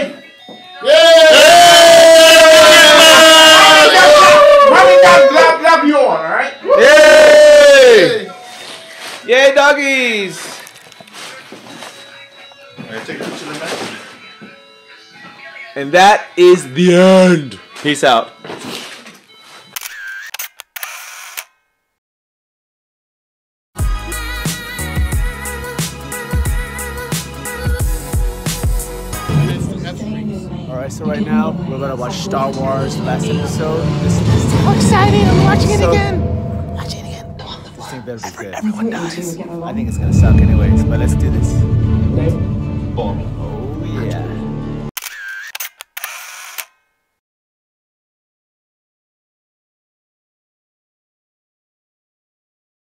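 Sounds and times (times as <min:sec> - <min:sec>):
camera handling noise: 0:10.6 - 0:11.2, 0:19.8 - 0:21.5, 0:45.0 - 0:46.8
sharp camera clicks: 0:19.8 - 0:21.6, 0:45.0 - 0:46.9.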